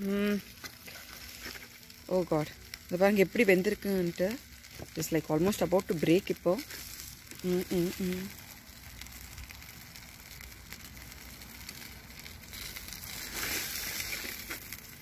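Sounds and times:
aluminium foil crinkling: 0:00.0 - 0:15.0.

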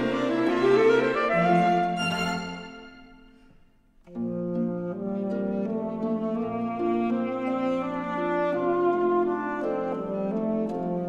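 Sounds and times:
cello: 0:00.0 - 0:11.0
string ensemble music: 0:00.0 - 0:11.0.

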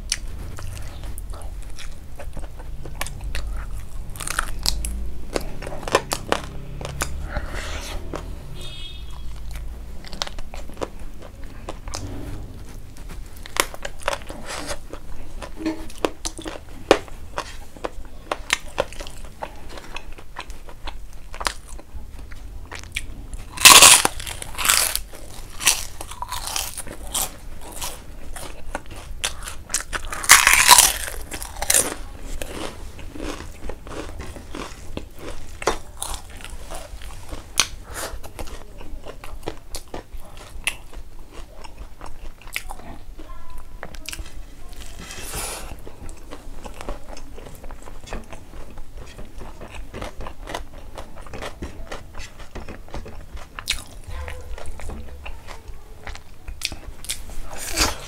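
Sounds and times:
soft chewing: 0:00.0 - 0:58.0
crunchy bites into cracker: 0:23.5 - 0:28.5, 0:29.3 - 0:36.9.

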